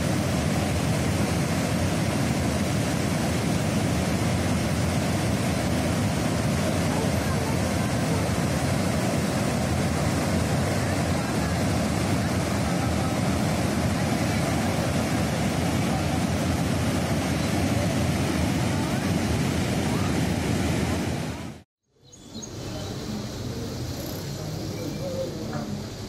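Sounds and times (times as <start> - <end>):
water rushing through spillway: 0.0 - 21.6.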